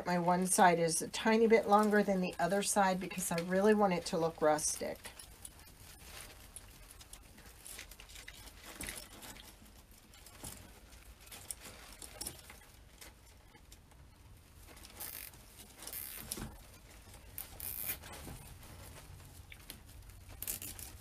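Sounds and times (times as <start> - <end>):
pine stems rustling and crackling: 0.0 - 21.0.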